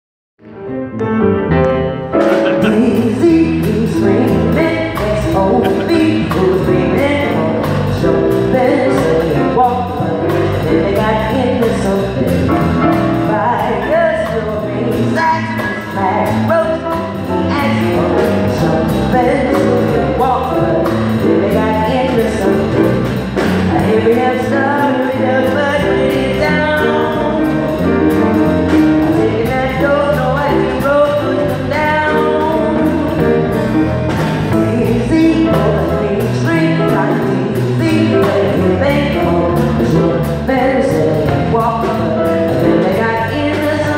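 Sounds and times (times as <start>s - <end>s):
live band playing: 0.5s - 43.9s
drum kit beat: 1.6s - 43.9s
drum kit with cymbal crashes: 2.2s - 8.0s
woman singing into microphone: 2.4s - 12.6s, 13.2s - 23.0s, 23.7s - 27.8s, 29.0s - 33.4s, 34.4s - 43.9s.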